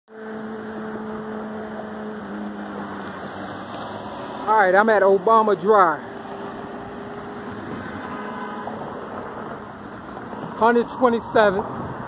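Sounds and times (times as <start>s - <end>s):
vehicle engine humming: 0.1s - 12.0s
broad rushing noise: 0.4s - 12.0s.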